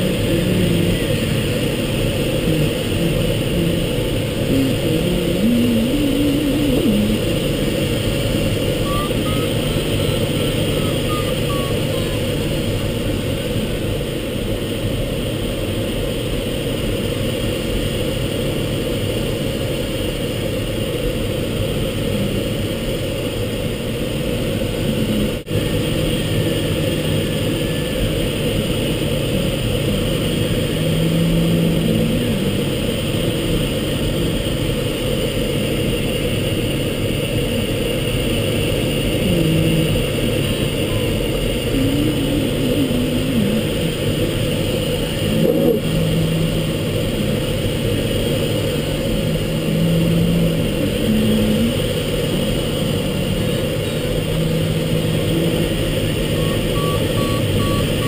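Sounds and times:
air rushing around glider cockpit: 0.0 - 58.0.

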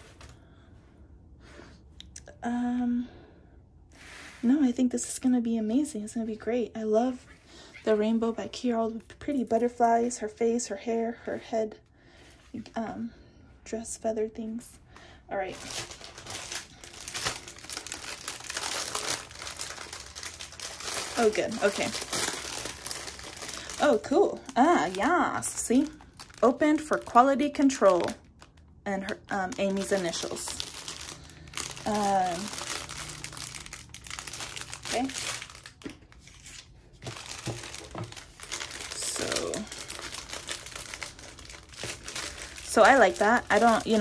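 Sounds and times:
plastic wrapping crinkling: 15.3 - 44.0.

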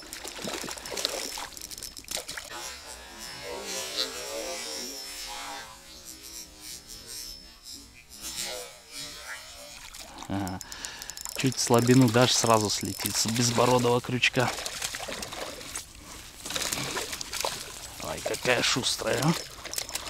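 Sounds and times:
fish splashing in water: 0.0 - 2.5, 9.6 - 20.0.

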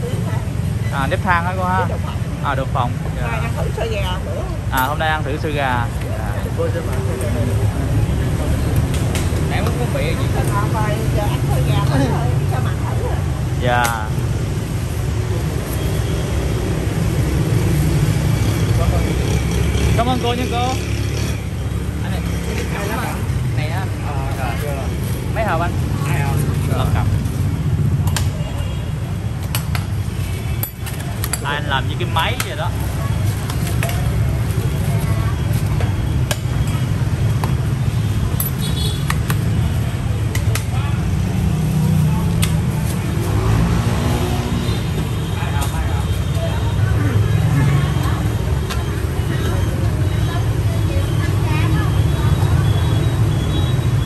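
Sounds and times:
voices: 0.0 - 14.2, 15.1 - 54.0
road traffic rumble: 0.0 - 54.0.

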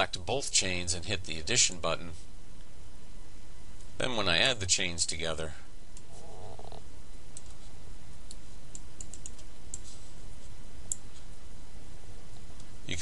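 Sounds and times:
steady low hum: 0.0 - 13.0
computer mouse clicks: 7.4 - 7.6, 8.3 - 9.9.

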